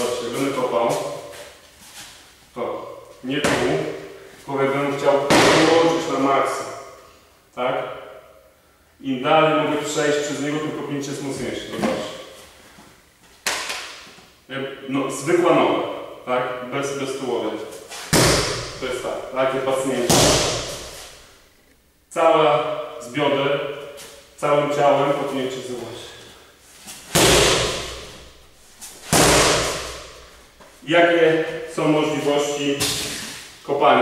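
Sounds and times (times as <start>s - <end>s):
kick smacking a kick shield: 5.3s - 5.8s, 18.1s - 18.8s, 20.1s - 21.0s, 27.1s - 28.2s, 29.0s - 30.2s.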